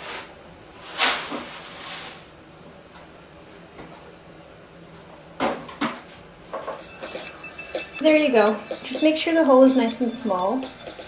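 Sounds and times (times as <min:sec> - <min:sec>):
plastic rustling scrape: 0:00.0 - 0:02.4.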